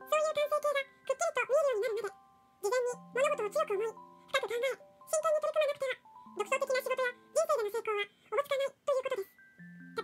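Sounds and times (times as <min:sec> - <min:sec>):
rapid high-pitched narration: 0:00.0 - 0:09.4
soft music-box music: 0:00.0 - 0:10.0.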